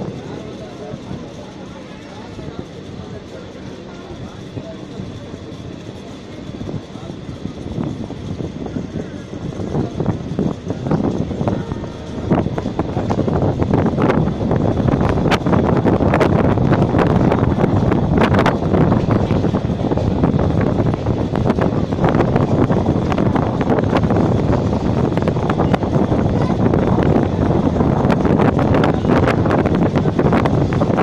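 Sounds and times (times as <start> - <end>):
train wheels clicking on rail joints: 0.0 - 31.0
wind buffeting microphone: 0.0 - 31.0.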